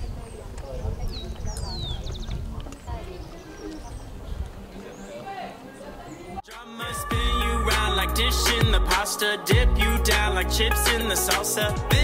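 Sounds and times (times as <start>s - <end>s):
people chattering: 0.0s - 9.5s.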